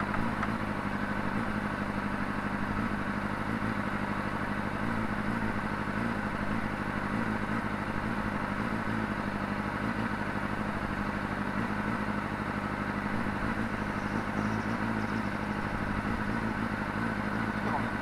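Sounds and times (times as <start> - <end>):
motorcycle engine idling: 0.0 - 18.0.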